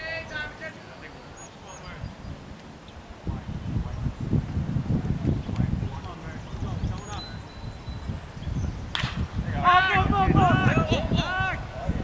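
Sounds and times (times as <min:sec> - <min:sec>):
baseball hitting bat or glove: 0:08.9 - 0:09.3
people calling out: 0:09.5 - 0:12.0.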